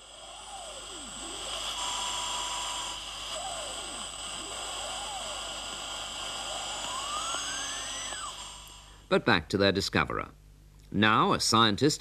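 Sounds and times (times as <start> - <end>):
radio static hiss: 0.0 - 9.5
steady radio whine: 0.0 - 10.3
sweeping whistling tones: 0.1 - 8.8.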